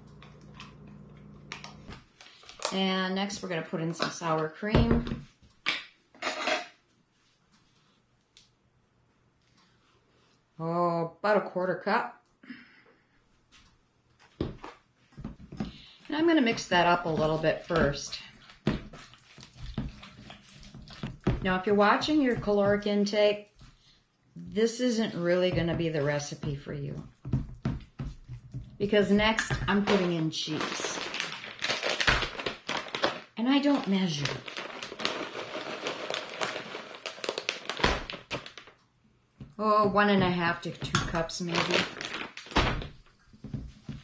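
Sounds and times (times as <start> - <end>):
spoon stirring wet mixture: 14.6 - 24.5, 25.1 - 31.4
plastic bag crinkling: 29.2 - 38.8, 40.3 - 43.0.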